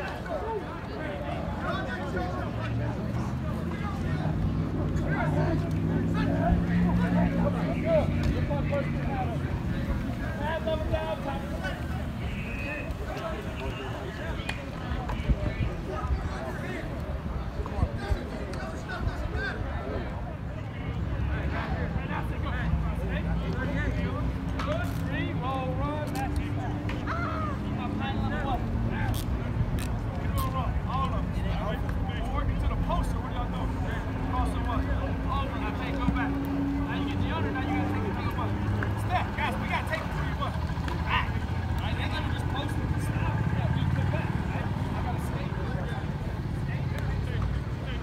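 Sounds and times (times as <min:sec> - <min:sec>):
distant shouts and calls: 0:00.0 - 0:22.4, 0:24.9 - 0:29.2, 0:30.4 - 0:46.7.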